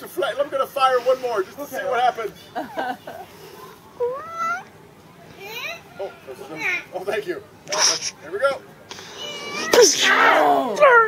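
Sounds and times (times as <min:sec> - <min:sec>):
audience calling out cries: 0:08.9 - 0:11.0.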